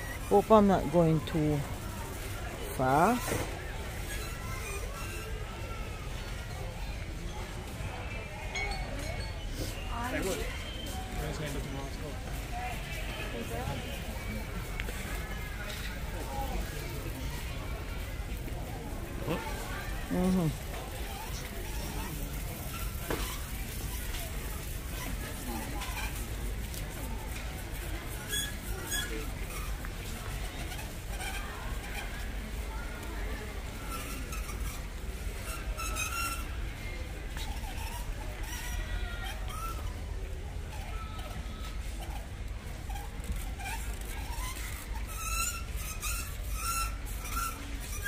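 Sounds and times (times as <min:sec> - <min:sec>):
faint voices: 0:00.0 - 0:48.0
shopping trolley rolling on concrete: 0:00.0 - 0:48.0.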